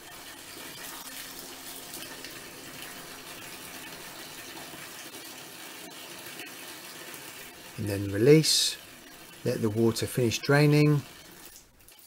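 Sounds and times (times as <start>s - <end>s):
water running from shower hose: 0.0s - 12.0s.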